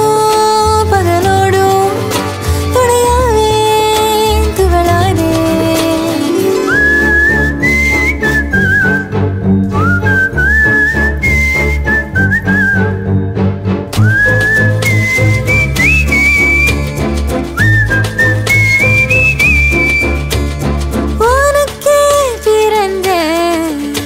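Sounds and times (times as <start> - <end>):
bass and rhythm backing: 0.0 - 24.0
whistled melody: 6.0 - 21.3.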